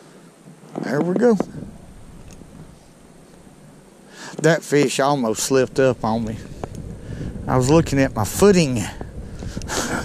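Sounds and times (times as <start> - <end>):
wind rumble on microphone: 0.8 - 3.9, 5.1 - 10.0.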